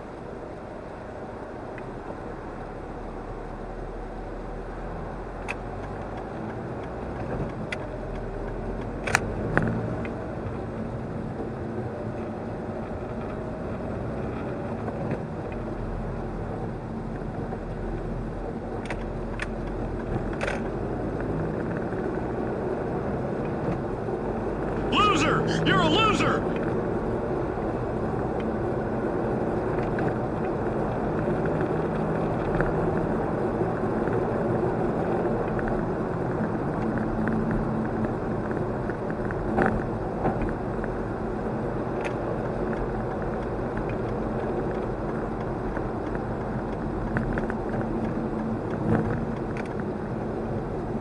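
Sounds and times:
car engine and tyre noise: 0.1s - 24.4s.

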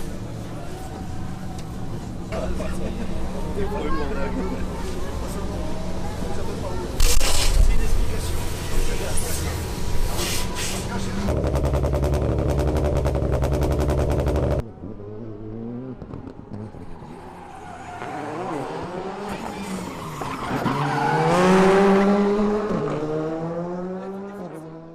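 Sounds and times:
car engine loud pulsing: 10.8s - 24.9s
rally car revving through gears: 11.0s - 24.9s.

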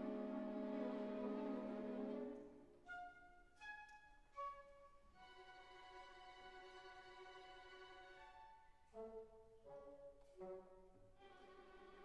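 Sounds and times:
quiet orchestral music: 0.0s - 12.0s.

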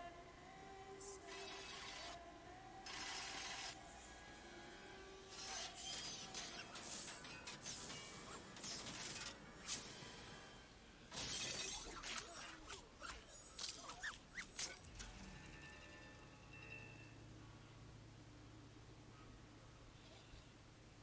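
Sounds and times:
shattering and breaking effects: 11.1s - 12.3s.

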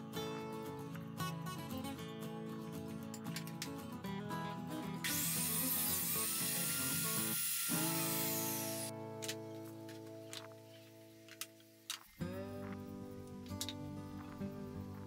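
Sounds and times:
background music: 0.0s - 15.0s
table saw cutting board: 5.0s - 8.9s.

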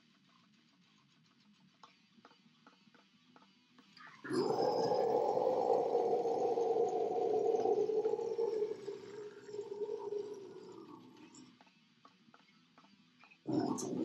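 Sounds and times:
low guttural vocal growl: 4.0s - 11.5s, 13.5s - 14.0s.

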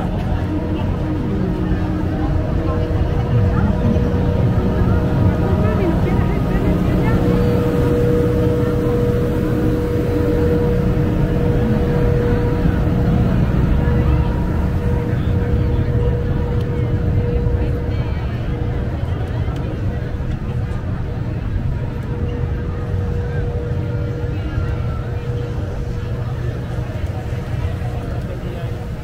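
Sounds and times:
crowd chatter: 0.0s - 29.0s
engine-driven generator humming: 0.0s - 29.0s.

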